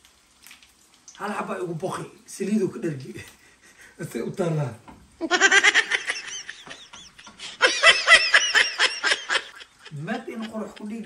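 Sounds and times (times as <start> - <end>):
high-pitched laughter: 5.2 - 11.0.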